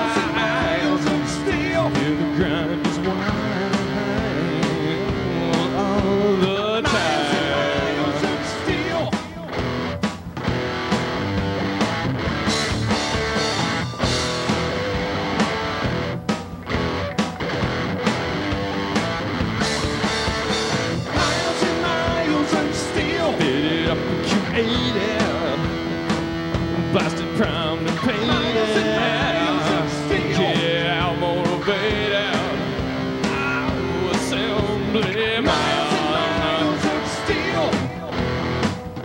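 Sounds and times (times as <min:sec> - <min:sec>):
guitar lead bending notes: 0:00.0 - 0:39.0
live rock band playing: 0:00.0 - 0:39.0.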